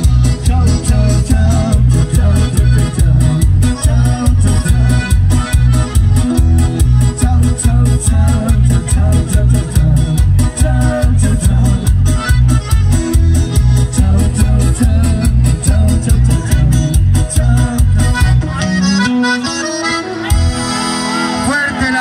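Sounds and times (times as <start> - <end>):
bass and drums beat: 0.0 - 21.2
accordion melody: 0.0 - 22.0.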